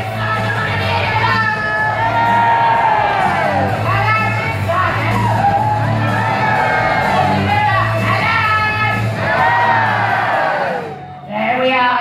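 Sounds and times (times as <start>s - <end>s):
backing music of stage song: 0.0s - 11.3s
audience cheering: 1.1s - 11.0s.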